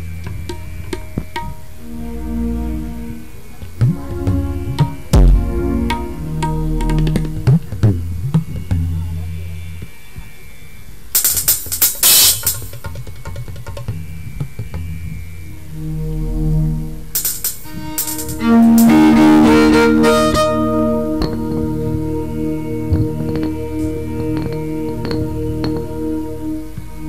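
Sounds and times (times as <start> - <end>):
low sustained keyboard notes: 0.0 - 10.0, 15.1 - 27.0
loud held chord: 1.7 - 8.1, 15.5 - 27.0
shimmering cymbal-like percussion: 16.2 - 21.9.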